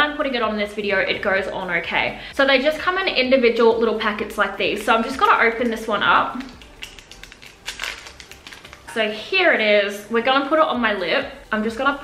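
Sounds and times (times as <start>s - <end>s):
packet being torn open: 6.3s - 8.9s.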